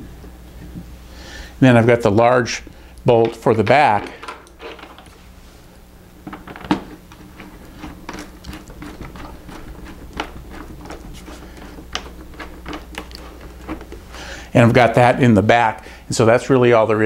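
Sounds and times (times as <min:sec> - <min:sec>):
faint steady hum: 0:00.0 - 0:17.0.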